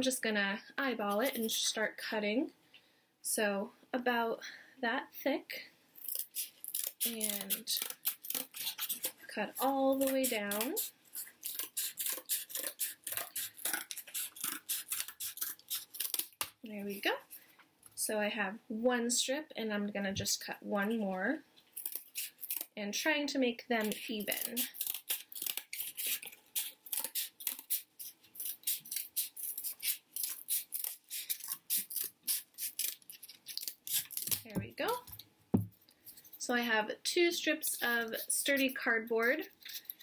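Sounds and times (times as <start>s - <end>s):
scissors cutting cardboard: 6.0s - 16.5s, 24.1s - 35.7s
scissors snipping cardboard: 6.7s - 16.5s.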